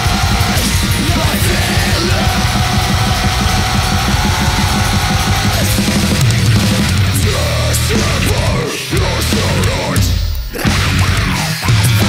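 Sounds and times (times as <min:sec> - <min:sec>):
metal band playing live: 0:00.0 - 0:12.0
rapid drumming: 0:00.0 - 0:12.0.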